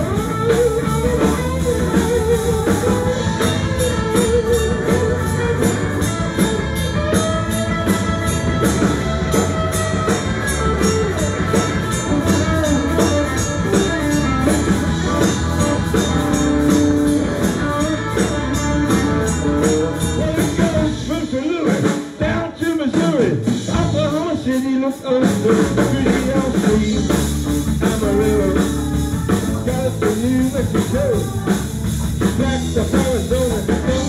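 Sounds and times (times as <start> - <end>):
electric guitar bending notes: 0.0 - 22.6, 25.4 - 34.0
bass guitar: 0.0 - 34.0
drum kit: 0.0 - 34.0.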